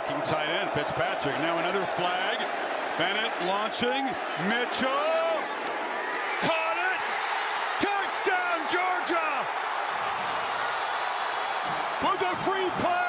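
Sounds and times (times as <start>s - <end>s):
stadium crowd cheering: 0.0s - 13.0s
man shouting excitedly: 6.4s - 7.0s, 7.8s - 9.5s.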